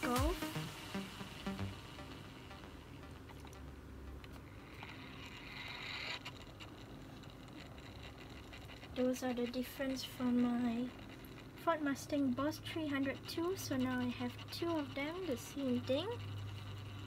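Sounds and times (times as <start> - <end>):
low hum: 0.0 - 17.0.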